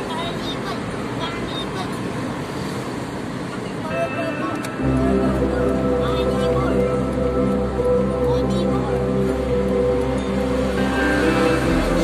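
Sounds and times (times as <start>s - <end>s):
road and engine noise in car: 0.0s - 12.0s
music: 4.2s - 12.0s.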